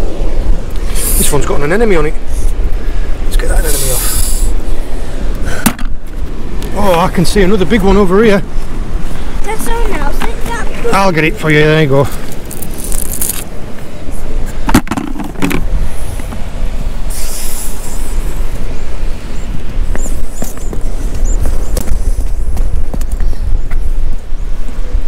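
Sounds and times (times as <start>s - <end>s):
wind buffeting microphone: 0.0s - 25.0s
short burst of hiss: 17.1s - 18.1s.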